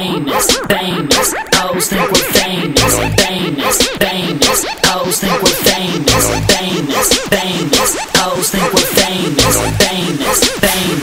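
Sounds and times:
rapping over a beat: 0.0 - 11.0
deep bass notes: 2.4 - 3.6, 6.0 - 6.7.

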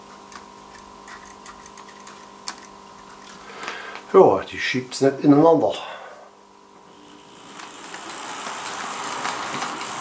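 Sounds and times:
faint steady hum: 0.0 - 10.0
model train rolling on track: 6.9 - 10.0.

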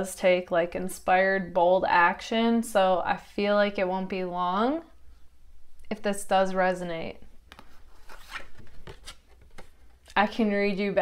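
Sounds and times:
index cards rustling and scraping: 7.5 - 10.2.

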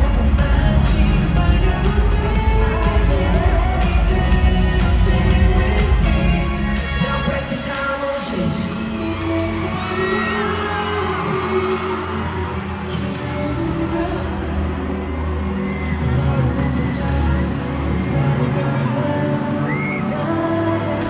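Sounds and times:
crowd whooping and cheering: 0.0 - 21.0
pop song with singing over loudspeakers: 0.0 - 21.0.

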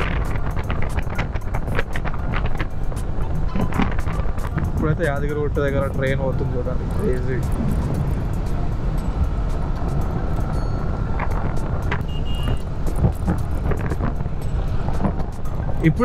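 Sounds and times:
wind rushing over microphone: 0.0 - 16.0
short high beep: 12.0 - 12.6.

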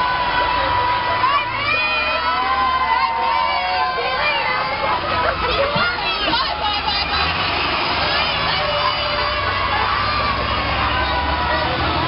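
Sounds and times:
bus rumbling past: 0.0 - 12.0
children shouting and cheering: 0.0 - 12.0.

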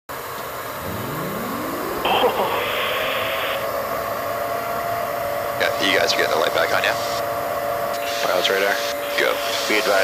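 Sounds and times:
rising whine: 0.7 - 4.8
radio static: 0.8 - 3.7
steady tone: 0.8 - 4.3.

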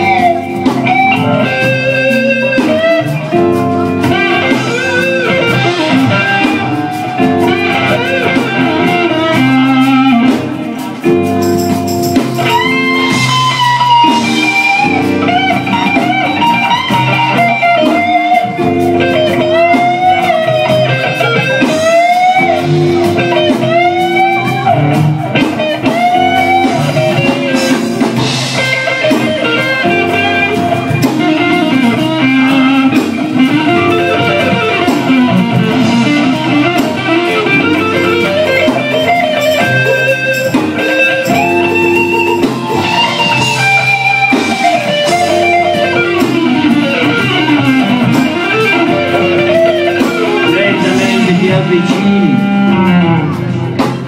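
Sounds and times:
blues band playing: 0.0 - 54.0
electric guitar bending notes: 0.0 - 54.0.

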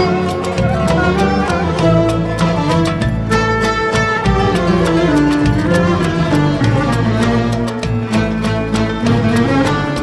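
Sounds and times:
steady percussion beat: 0.0 - 10.0.

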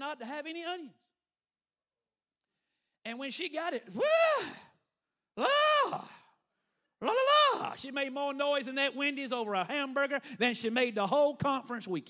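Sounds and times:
man's voice wailing: 3.5 - 4.8, 5.4 - 6.3, 7.0 - 11.4.

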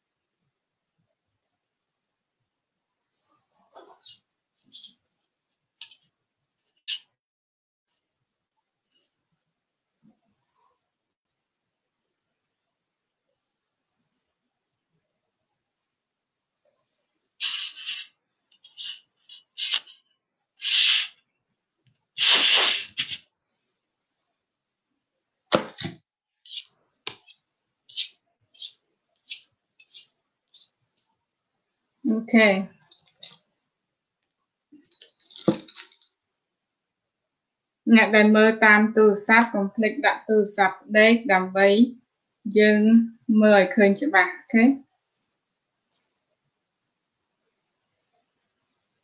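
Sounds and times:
person sneezing: 22.2 - 23.2
woman speaking: 32.1 - 32.8, 37.9 - 44.8.

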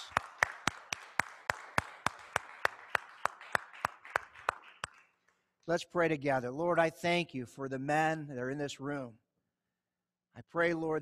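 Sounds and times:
audience applause: 0.0 - 5.1
sharp hand claps: 0.0 - 5.4.

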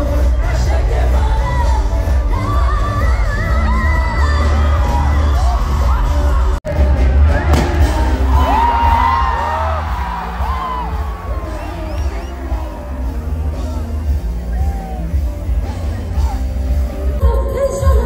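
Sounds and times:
woman singing lead: 0.0 - 14.1, 15.2 - 18.0
live pop band: 0.0 - 18.0.

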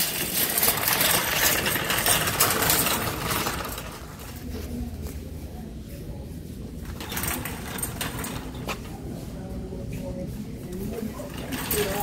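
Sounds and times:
shopping cart clanks: 0.0 - 4.6, 6.8 - 9.2, 10.9 - 12.0
shopping cart rattling on concrete: 0.0 - 5.0, 6.8 - 9.4, 10.7 - 12.0.

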